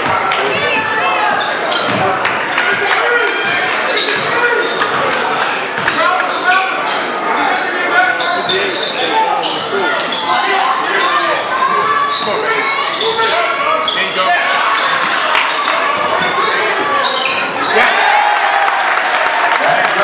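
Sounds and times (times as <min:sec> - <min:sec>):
crowd chatter in echoing gym: 0:00.0 - 0:20.0.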